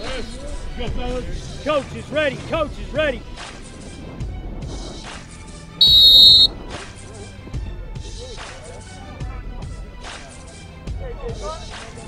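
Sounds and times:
whistle blast: 5.8s - 6.5s.

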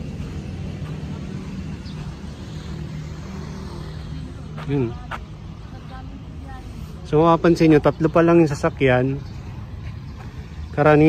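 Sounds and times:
vehicle engines idling: 0.0s - 11.0s.

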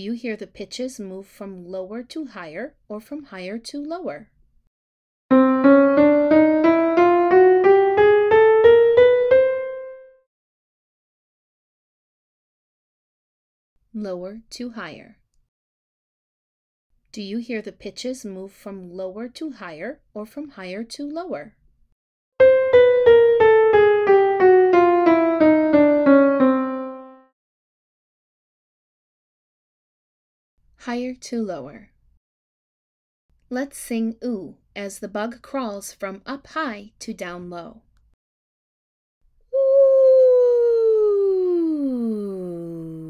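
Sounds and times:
piano notes climbing: 5.3s - 10.2s, 22.4s - 27.3s.

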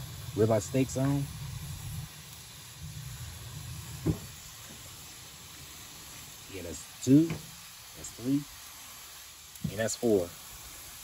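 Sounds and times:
steak sizzling on grill: 0.0s - 11.0s.

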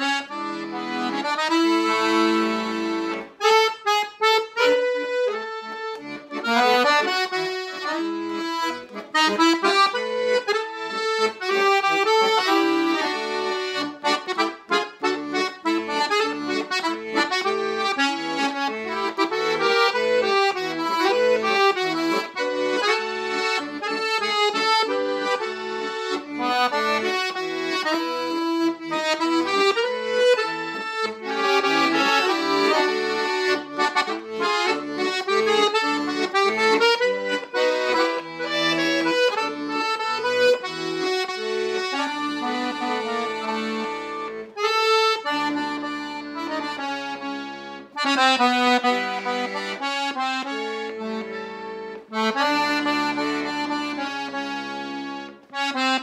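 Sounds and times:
piano accordion playing folk song: 0.0s - 56.0s.

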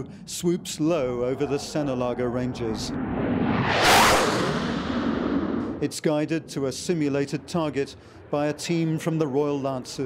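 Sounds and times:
jet engines roaring in flyby: 0.0s - 10.0s.

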